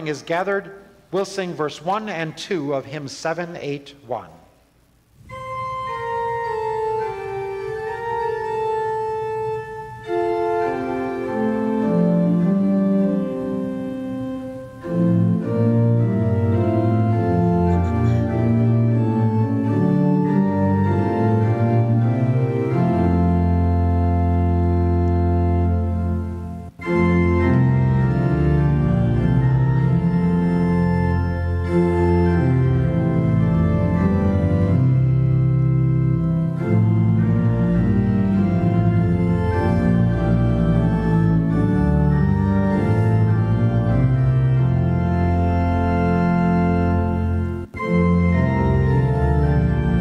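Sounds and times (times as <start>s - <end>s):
organ playing a hymn: 0.0s - 4.3s, 5.2s - 50.0s.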